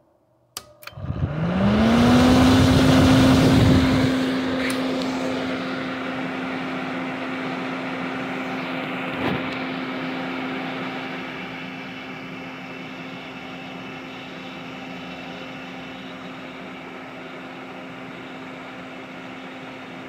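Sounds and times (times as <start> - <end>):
welder fan humming: 0.5 - 20.0.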